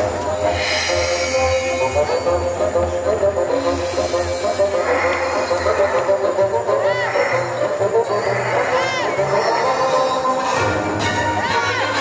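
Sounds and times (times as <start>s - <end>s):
music through outdoor speakers: 0.0s - 12.0s.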